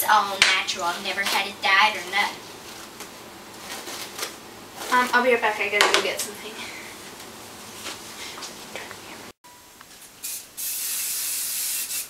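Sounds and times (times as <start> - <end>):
hairspray hissing from spray can: 10.2 - 12.0.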